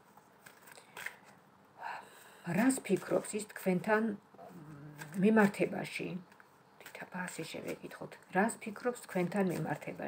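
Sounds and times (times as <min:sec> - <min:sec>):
cards being shuffled: 0:00.0 - 0:01.4, 0:02.6 - 0:03.9, 0:04.6 - 0:10.0
card edges clicking: 0:04.9 - 0:07.9.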